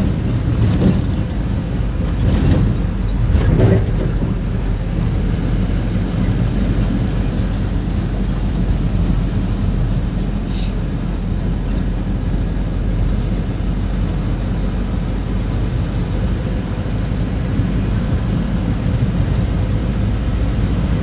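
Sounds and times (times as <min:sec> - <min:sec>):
truck engine and road rumble: 0:00.0 - 0:21.0
brief hiss: 0:10.4 - 0:10.8.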